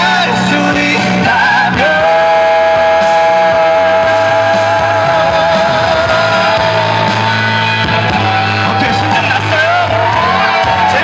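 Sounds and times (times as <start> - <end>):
man singing a long high note: 0.0 - 11.0
rock band backing track: 0.0 - 11.0.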